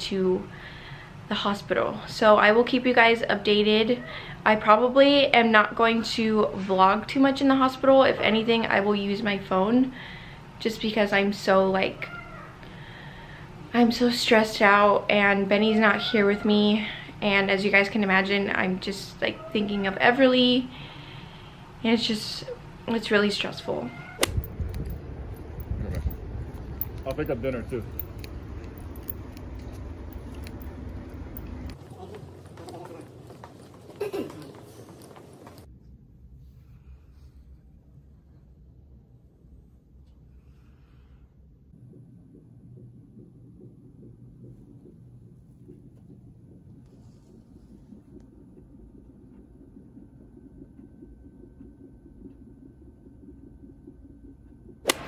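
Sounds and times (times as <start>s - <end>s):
fetal heartbeat on doppler monitor: 13.1s - 26.9s, 41.4s - 54.9s
low rumbling wind: 22.6s - 31.9s
sharp click: 24.2s - 24.9s.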